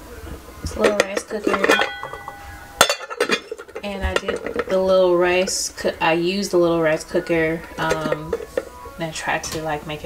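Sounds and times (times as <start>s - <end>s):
glass lid clinking on pot rim: 0.8s - 4.7s.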